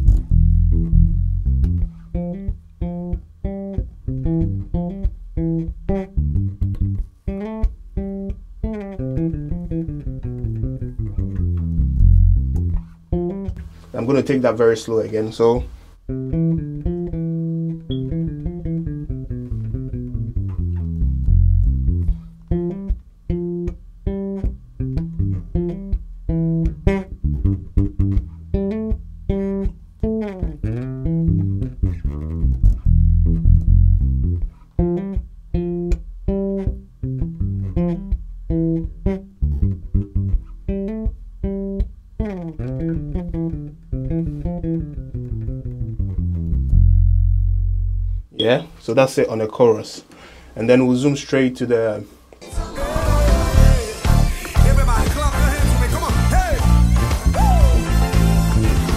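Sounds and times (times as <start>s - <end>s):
electric bass plucked fingerstyle: 0.0s - 48.8s, 52.4s - 58.9s.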